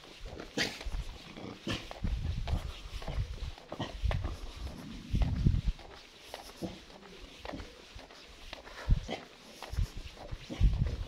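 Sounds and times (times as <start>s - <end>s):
footsteps on paved road: 0.0s - 11.0s.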